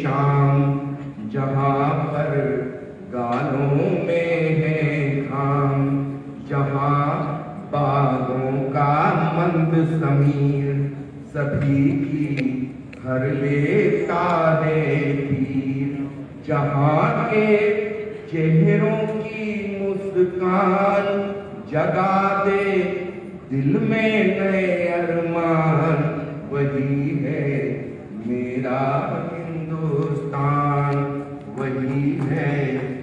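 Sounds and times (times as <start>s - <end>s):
man singing melodic chant: 0.0s - 33.0s.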